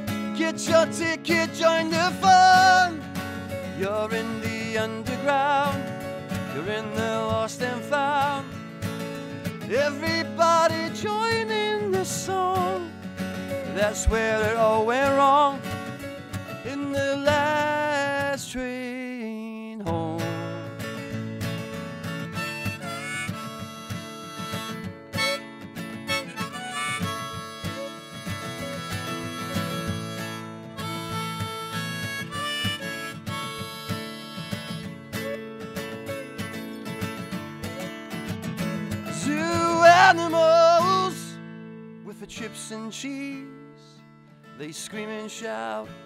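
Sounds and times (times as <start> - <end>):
harmonica solo: 0.0 - 6.6, 9.3 - 16.4, 21.6 - 41.1
strummed acoustic guitar: 0.0 - 46.0.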